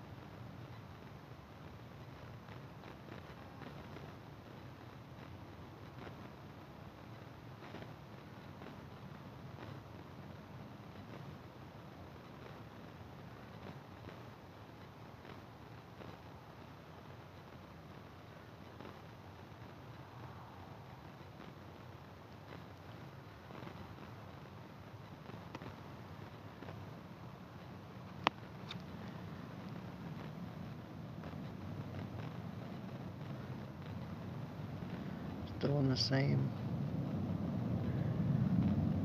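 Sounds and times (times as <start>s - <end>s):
distant airplane engine rumble: 17.9s - 39.0s.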